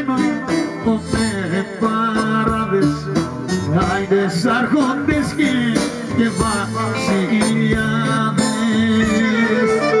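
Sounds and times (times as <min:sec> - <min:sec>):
drum kit: 0:00.0 - 0:10.0
guitar: 0:00.0 - 0:10.0
clarinet bending long notes: 0:09.0 - 0:10.0.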